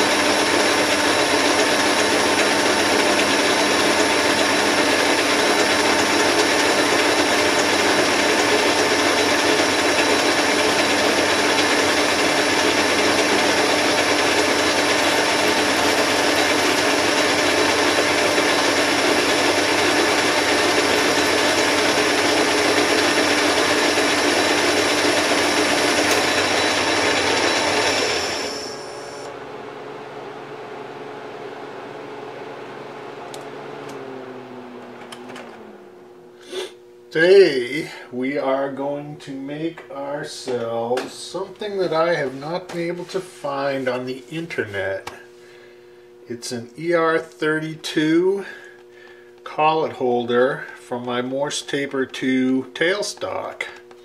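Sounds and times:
metal lathe machining with whine: 0.0s - 45.0s
steady machine hum: 0.0s - 54.0s.

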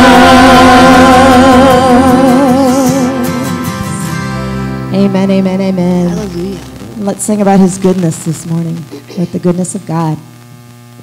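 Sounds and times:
voice holding long notes: 0.0s - 4.2s, 4.8s - 9.7s
instrumental accompaniment: 0.0s - 9.3s.

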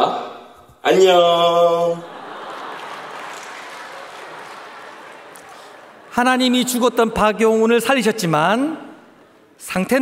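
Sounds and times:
crowd reaction in a hall: 0.0s - 10.0s.

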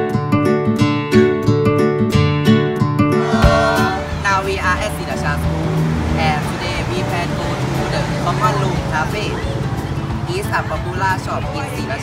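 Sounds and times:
young people speaking: 3.2s - 5.5s
road traffic noise: 3.2s - 12.0s.

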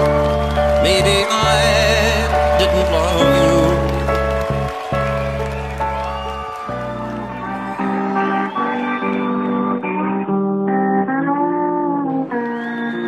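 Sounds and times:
country band with guitar: 0.0s - 13.0s.

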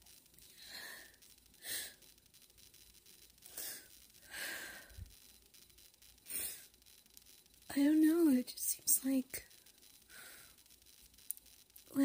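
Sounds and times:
breathy noises: 0.4s - 2.2s, 3.4s - 5.3s
woman speaking softly: 7.7s - 9.4s.

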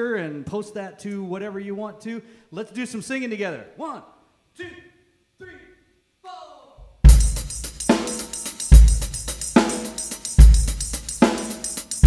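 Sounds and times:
kick drum and cymbal hits: 6.9s - 12.0s
live rock band playing: 7.1s - 12.0s.

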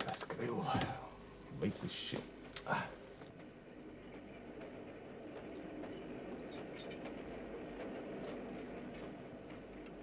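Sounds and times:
railway carriage rumble: 0.4s - 10.0s.

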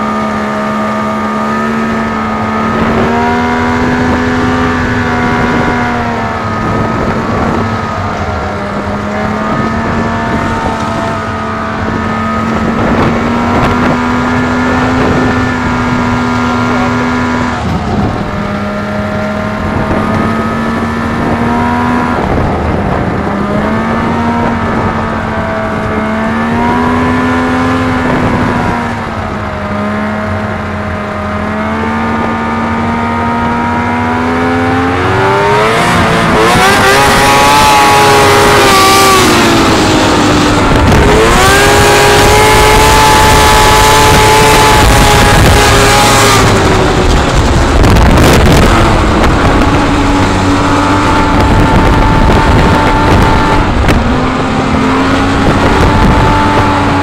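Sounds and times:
snowmobile engine running hard: 0.0s - 57.0s.

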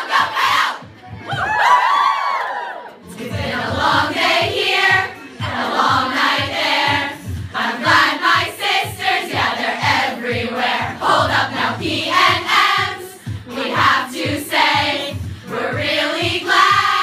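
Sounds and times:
women singing and chanting: 0.0s - 0.9s, 3.0s - 17.0s
high swooping whoops: 1.3s - 2.9s
steady beat: 3.2s - 17.0s.

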